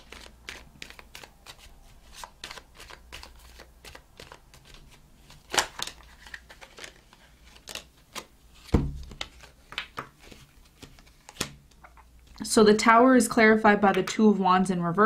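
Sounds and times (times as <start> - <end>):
cards snapping: 0.0 - 11.8
cards being shuffled: 0.0 - 12.4.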